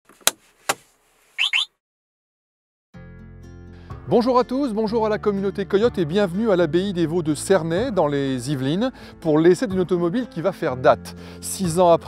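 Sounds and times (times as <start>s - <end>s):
electronic chirps rising tone: 1.4s - 1.7s.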